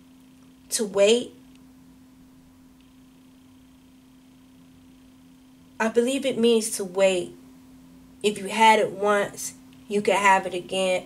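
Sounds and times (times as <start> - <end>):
faint high whine: 0.0 - 11.0
steady low hum: 0.0 - 11.0.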